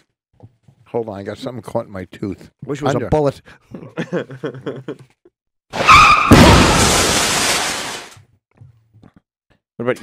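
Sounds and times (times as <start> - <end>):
car crash: 5.7 - 8.2
tyre screech: 5.8 - 6.8.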